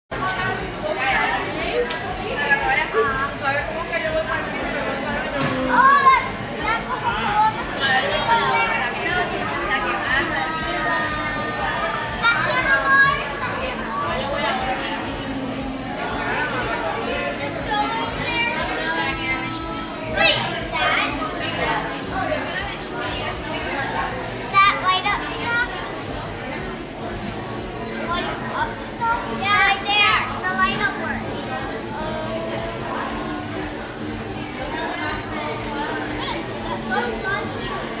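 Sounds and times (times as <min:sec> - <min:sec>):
background talk: 0:00.1 - 0:38.0
dining room chatter: 0:00.1 - 0:38.0
children's voices: 0:00.2 - 0:38.0.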